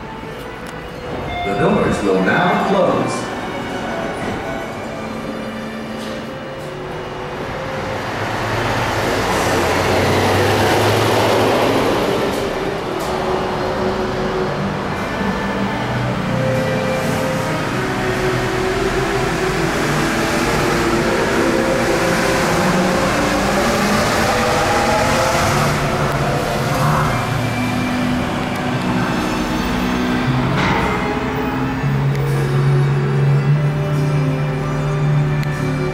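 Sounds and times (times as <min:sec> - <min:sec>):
monorail motor whine: 0:00.0 - 0:35.9
music playing: 0:00.0 - 0:35.9
rushing noise: 0:01.0 - 0:33.9.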